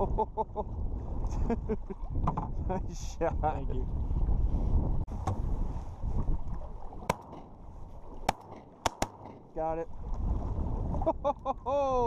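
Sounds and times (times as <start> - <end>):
wind on microphone: 0.0 - 12.0
water slapping boat hull: 0.7 - 4.5, 5.1 - 11.7.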